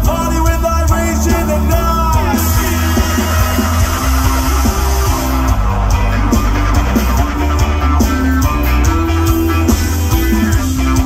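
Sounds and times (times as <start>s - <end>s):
reggae rock band playing: 0.0s - 11.0s.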